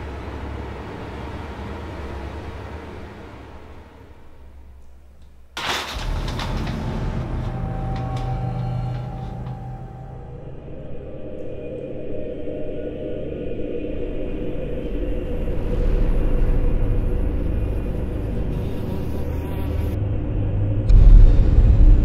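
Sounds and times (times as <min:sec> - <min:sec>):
low rumbling drone: 0:00.0 - 0:22.0
loud low boom: 0:20.8 - 0:22.0.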